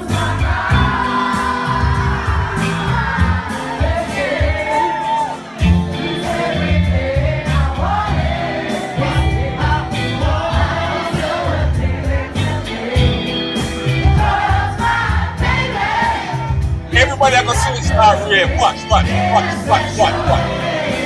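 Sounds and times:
band with pulsing bass: 0:16.6 - 0:21.0.

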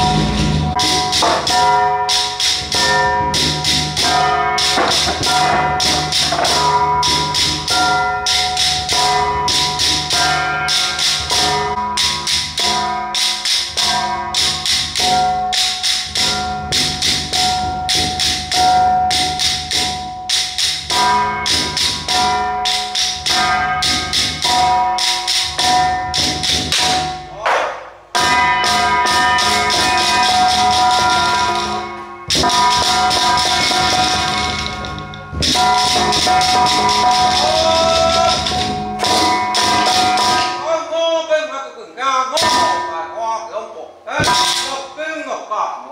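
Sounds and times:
metallic percussion strikes: 0:00.0 - 0:40.9, 0:42.4 - 0:43.4, 0:44.1 - 0:45.1.

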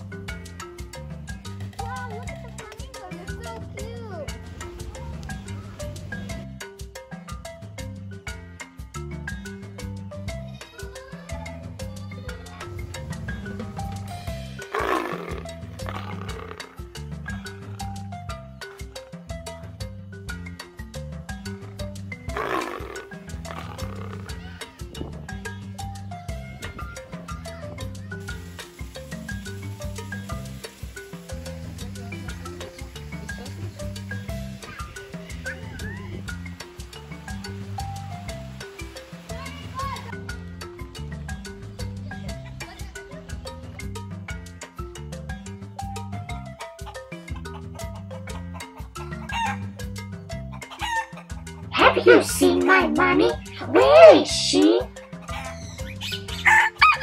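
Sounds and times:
background music with mallet notes: 0:00.0 - 0:57.0
tiger roar: 0:14.6 - 0:16.8, 0:22.3 - 0:24.4
rooster crowing: 0:49.2 - 0:49.7, 0:50.6 - 0:51.2, 0:56.4 - 0:57.0.

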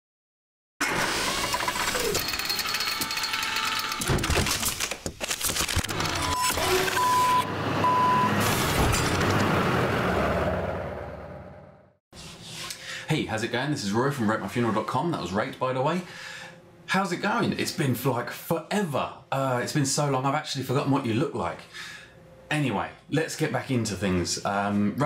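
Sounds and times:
short electronic beeps: 0:06.2 - 0:08.3.

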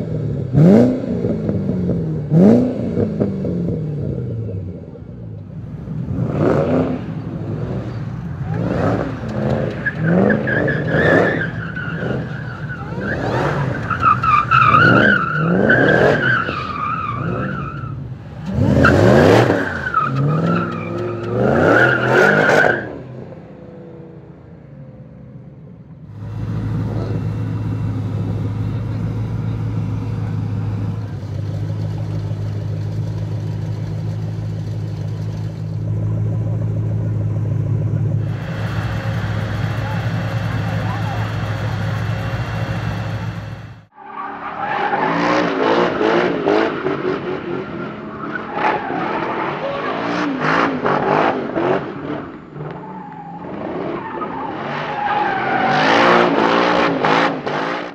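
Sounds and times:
car engine revving and accelerating: 0:00.0 - 0:04.8, 0:05.8 - 0:24.2, 0:44.8 - 0:52.8, 0:53.4 - 0:57.9
supercharger whine: 0:25.1 - 0:44.0
engine idling: 0:26.1 - 0:43.9.

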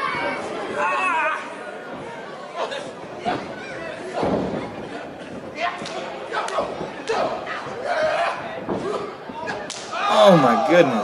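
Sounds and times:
crowd chatter in a hall: 0:00.0 - 0:11.0
sharp smacks of wrestlers: 0:08.6 - 0:10.0.

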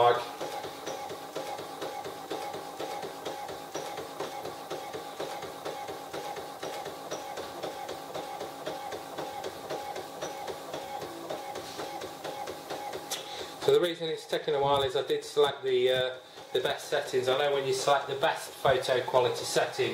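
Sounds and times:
printer motor whine and ticking: 0:00.0 - 0:13.8, 0:16.0 - 0:19.9.

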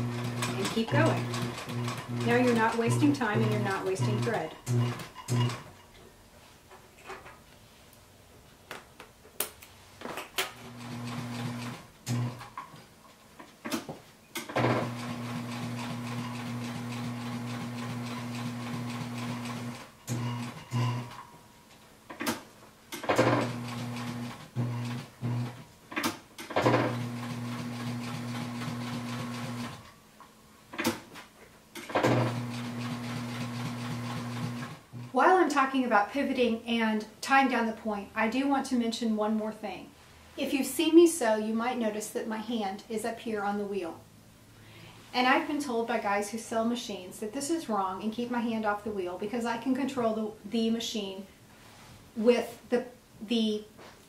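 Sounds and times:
sewing machine motor humming: 0:00.0 - 0:05.7, 0:10.6 - 0:12.4, 0:14.6 - 0:21.2, 0:23.2 - 0:25.6, 0:26.6 - 0:29.9, 0:32.0 - 0:35.2.

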